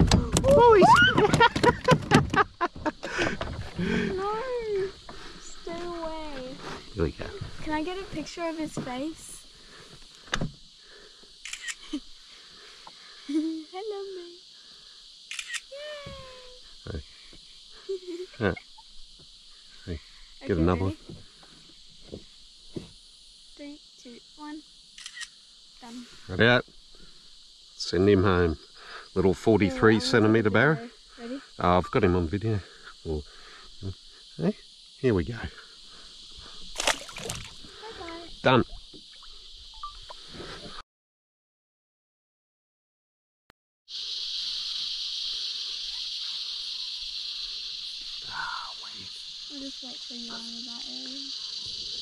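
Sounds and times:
high-pitched insect drone: 0.0s - 40.8s, 43.9s - 52.0s.

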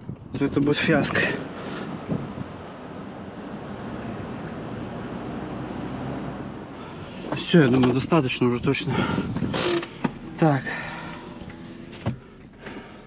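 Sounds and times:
wind on microphone: 0.0s - 6.6s, 8.6s - 9.8s
car engine running: 0.4s - 13.0s.

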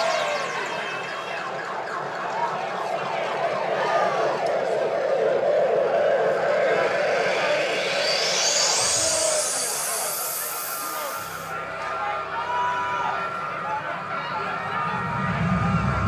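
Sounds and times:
siren-like electronic wail: 0.0s - 11.5s
rising pitch sweep: 4.4s - 11.7s, 14.6s - 16.0s.

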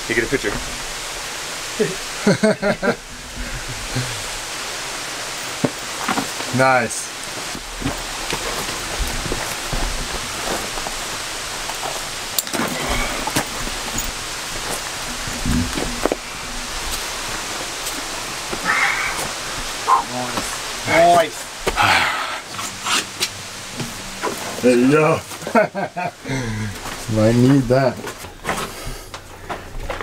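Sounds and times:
outdoor hiss: 0.0s - 30.0s.

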